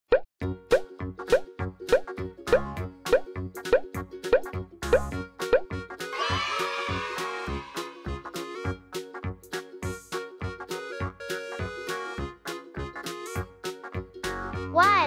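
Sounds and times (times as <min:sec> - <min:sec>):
cartoon bloop pops rising: 0:00.1 - 0:05.8
cheerful children's music: 0:00.4 - 0:15.0.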